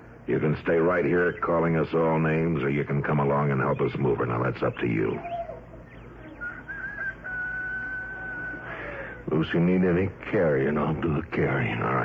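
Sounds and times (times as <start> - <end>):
bird call: 4.7 - 9.2.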